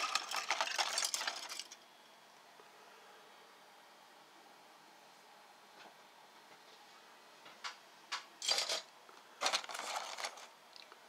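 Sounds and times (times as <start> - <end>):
plastic parts clattering and clicking: 0.0 - 1.8, 8.4 - 10.5.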